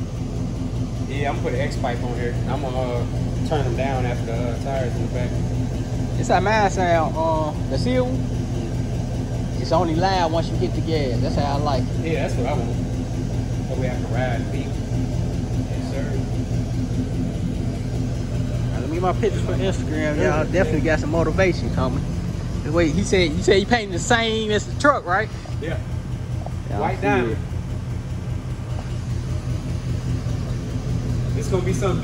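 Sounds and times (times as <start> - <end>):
car engine idling: 0.0 - 32.0.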